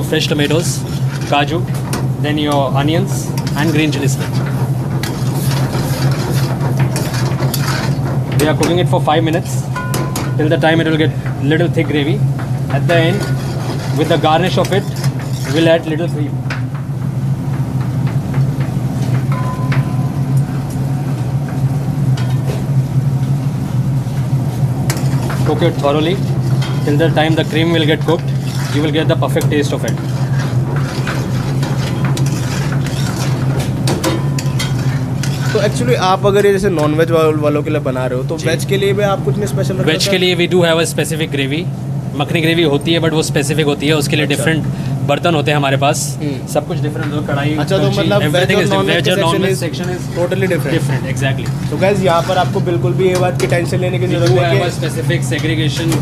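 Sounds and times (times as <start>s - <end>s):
exhaust hood fan drone: 0.0s - 56.0s
steady low hum: 0.0s - 56.0s
ladle stirring thick gravy: 0.3s - 8.5s, 11.1s - 16.4s, 24.6s - 35.9s, 49.5s - 54.9s.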